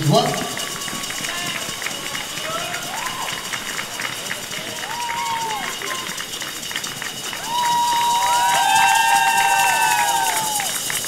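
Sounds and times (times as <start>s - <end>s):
crowd murmur: 0.0s - 8.5s
drawn-out calls from audience: 0.0s - 11.0s.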